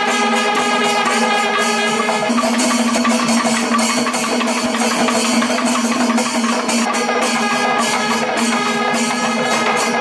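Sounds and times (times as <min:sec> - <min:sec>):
cymbal strokes: 0:00.0 - 0:10.0
drum strokes: 0:00.0 - 0:10.0.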